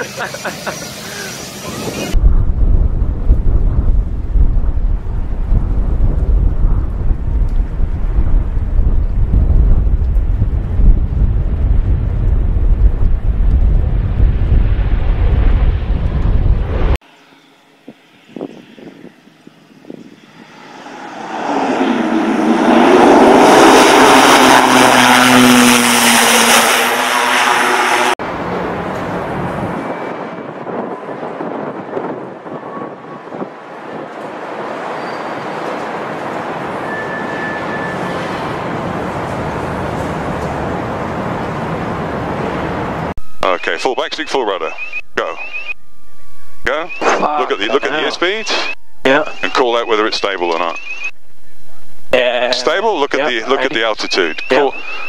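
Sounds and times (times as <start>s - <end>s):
aircraft engines: 0.0s - 51.7s, 52.4s - 55.0s
loud deep rumble: 1.7s - 17.0s, 39.1s - 53.8s.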